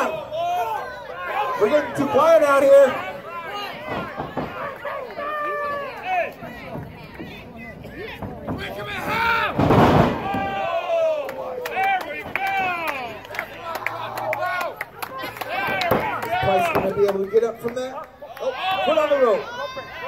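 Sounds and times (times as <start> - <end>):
spectators shouting: 0.0 - 20.0.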